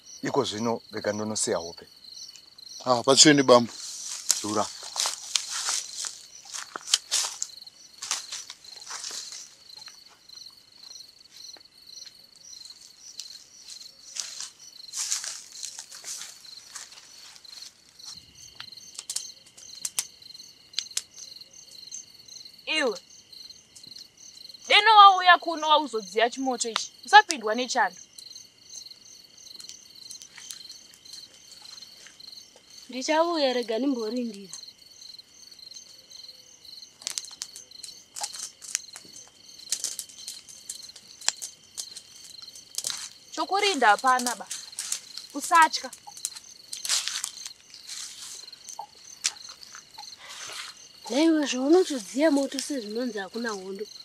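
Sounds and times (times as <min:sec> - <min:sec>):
crickets chirping: 0:00.0 - 0:54.0
rustling: 0:03.1 - 0:11.5, 0:12.6 - 0:20.0, 0:36.9 - 0:53.8
sharp clicks: 0:18.6 - 0:20.1
sharp clicks and crackles: 0:18.6 - 0:20.1, 0:20.8 - 0:21.3, 0:37.0 - 0:43.2, 0:43.9 - 0:49.9.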